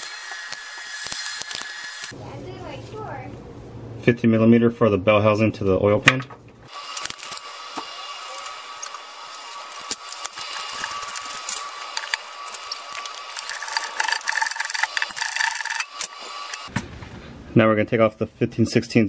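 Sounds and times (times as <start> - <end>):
hand ratchet clicking: 9.8 - 16.7.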